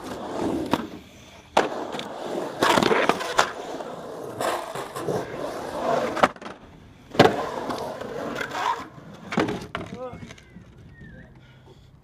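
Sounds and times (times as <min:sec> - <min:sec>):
skateboard landing slap: 0:00.0 - 0:03.5, 0:06.0 - 0:07.9
skateboard wheels rolling on concrete: 0:00.0 - 0:12.0
skateboard knocks and clacks: 0:07.2 - 0:10.8.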